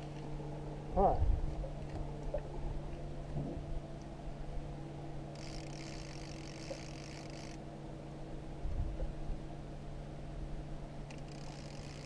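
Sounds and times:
outboard motor running: 0.0s - 9.6s, 11.1s - 12.0s.

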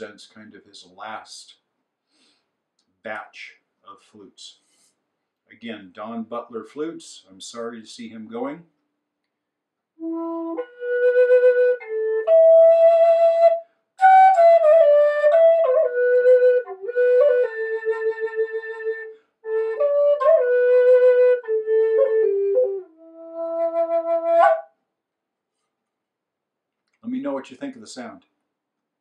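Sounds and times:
wooden flute slow melody: 10.0s - 24.8s.

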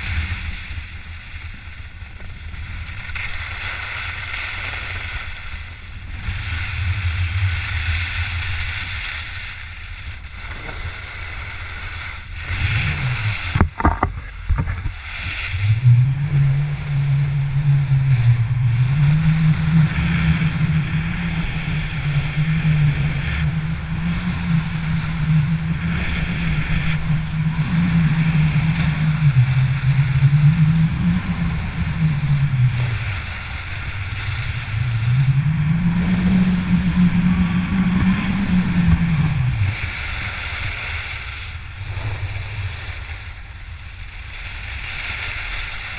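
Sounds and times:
skis rushing over snow: 0.0s - 35.4s
low sweeping hum: 0.0s - 44.8s
wind on microphone: 0.0s - 45.9s
sharp knocks: 13.6s - 14.9s.

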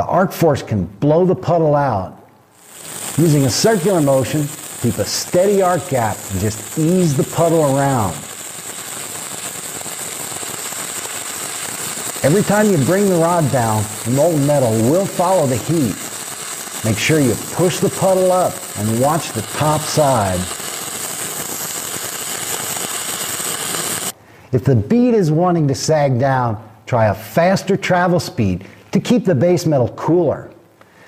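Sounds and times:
welding arc crackling and sizzling: 2.5s - 24.2s.

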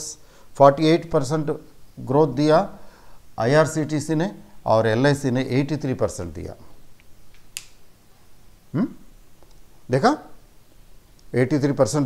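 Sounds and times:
man saying questioning hm: 8.7s - 9.1s.

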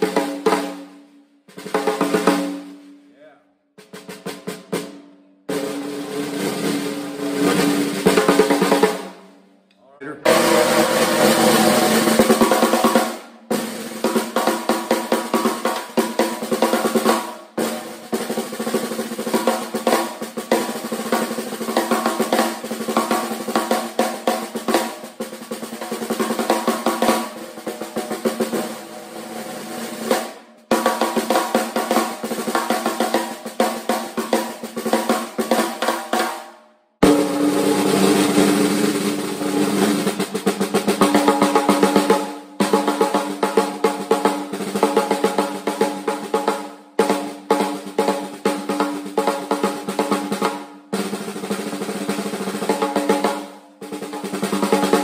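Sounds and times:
snare drum rolls and strokes: 0.0s - 9.4s, 10.0s - 55.0s.

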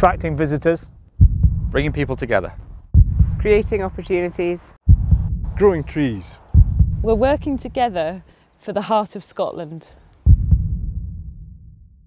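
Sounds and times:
deep low boom: 0.0s - 4.2s, 4.8s - 7.6s, 10.3s - 12.0s.

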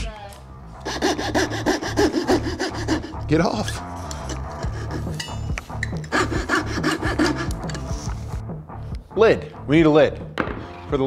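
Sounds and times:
hand saw cutting wood: 0.8s - 5.2s, 6.0s - 8.0s.

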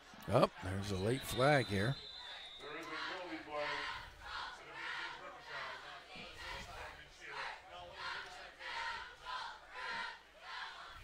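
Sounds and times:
stadium crowd chanting: 0.0s - 11.0s.

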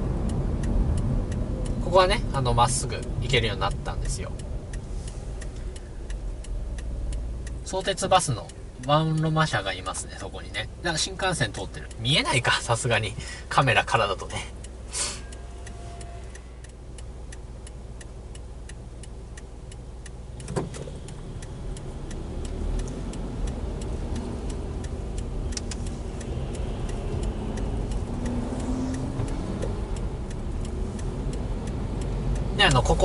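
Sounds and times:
car engine idling: 0.0s - 33.0s
road noise: 0.0s - 33.0s
turn-signal indicator ticking: 0.0s - 33.0s.

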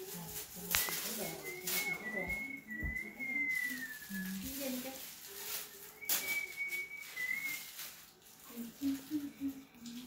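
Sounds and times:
tissue paper rustling: 0.0s - 10.0s.

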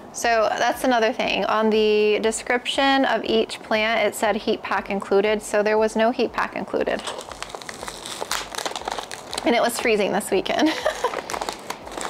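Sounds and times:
paper and plastic wrap crinkling: 6.9s - 12.0s.

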